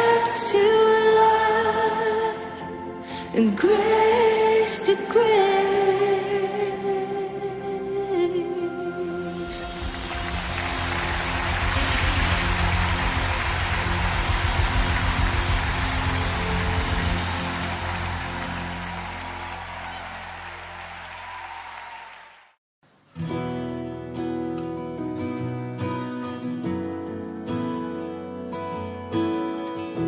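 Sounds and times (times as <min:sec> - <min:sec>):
live worship band music: 0:00.0 - 0:21.1.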